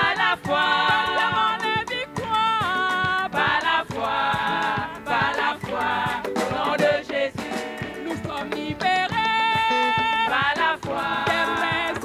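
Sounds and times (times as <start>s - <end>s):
beat: 0.0s - 12.0s
choir singing gospel: 0.0s - 12.0s.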